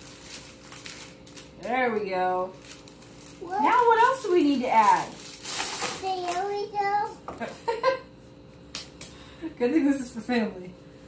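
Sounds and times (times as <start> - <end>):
plastic bag rustling: 0.0 - 6.6.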